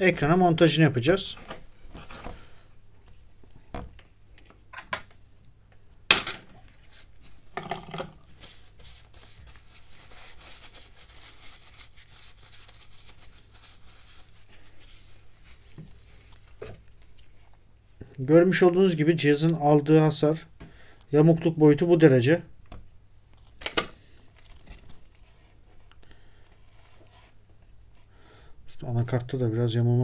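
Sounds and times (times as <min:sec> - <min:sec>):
faint background hiss: 0:00.0 - 0:30.0.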